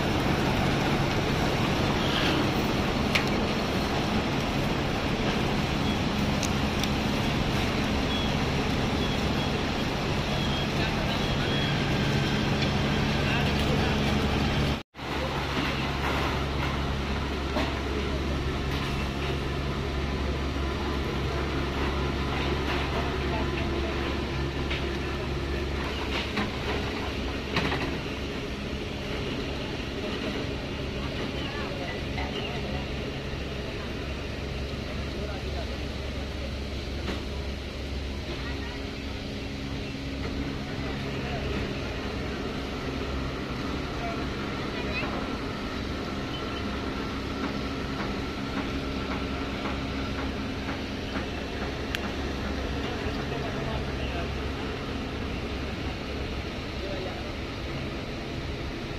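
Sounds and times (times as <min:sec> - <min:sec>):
machinery hum: 0:00.0 - 0:58.9.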